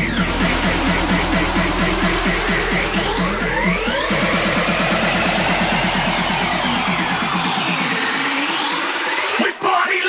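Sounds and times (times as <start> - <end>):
edm build-up: 0.0 - 9.4
rapid repeated notes: 0.0 - 10.0.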